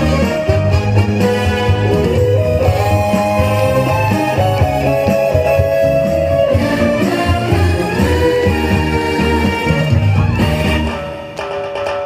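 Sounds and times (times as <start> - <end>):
lead melody line: 0.0 - 11.5
beat and bass: 0.0 - 12.0
guitar: 0.0 - 12.0.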